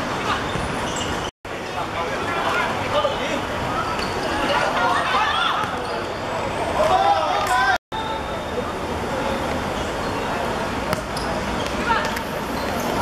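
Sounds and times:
traffic noise: 0:00.0 - 0:13.0.

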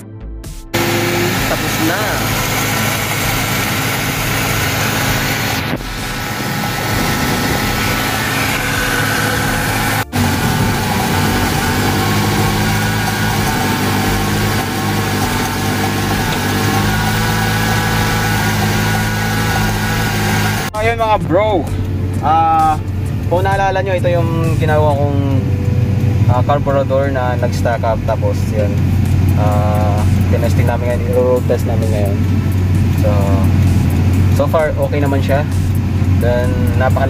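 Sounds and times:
car engine idling: 0:00.7 - 0:37.0.

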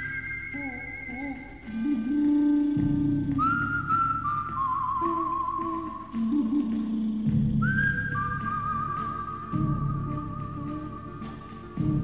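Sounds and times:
whistle-like melody with vibrato: 0:00.0 - 0:12.0.

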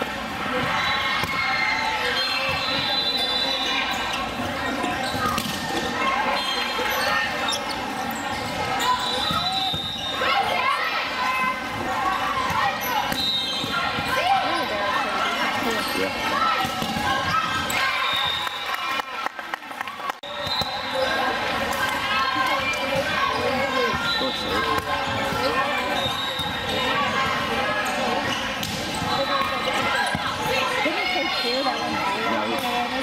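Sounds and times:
echoing hubbub of voices: 0:00.0 - 0:33.0.

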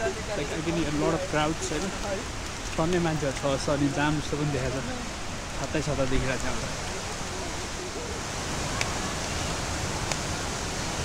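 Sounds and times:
stream rushing: 0:00.0 - 0:11.0.

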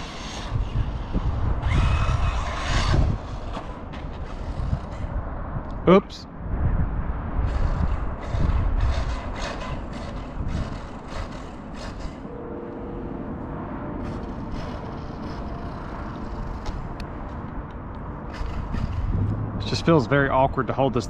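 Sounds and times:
electric toy car running on dirt: 0:00.0 - 0:05.2, 0:07.4 - 0:12.2, 0:14.0 - 0:17.0, 0:18.3 - 0:19.2
steady whine: 0:07.4 - 0:21.0
low rumble: 0:12.2 - 0:20.7.

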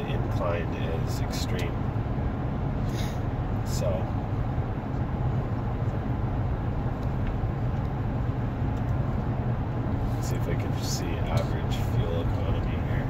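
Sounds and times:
low engine drone: 0:00.0 - 0:13.0
road and tyre noise: 0:00.0 - 0:13.0.

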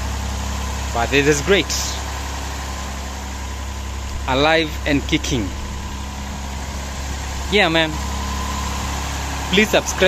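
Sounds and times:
car engine idling high: 0:00.0 - 0:10.0.

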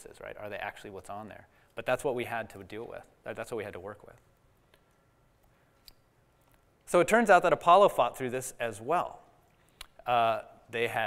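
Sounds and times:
man speaking: 0:00.0 - 0:04.2, 0:06.9 - 0:09.2, 0:10.0 - 0:11.0.

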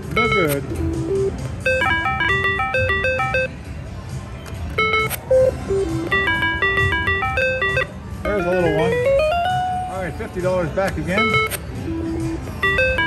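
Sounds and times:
slot machine beeping tunes: 0:00.0 - 0:03.8, 0:04.7 - 0:10.4, 0:11.0 - 0:13.0.

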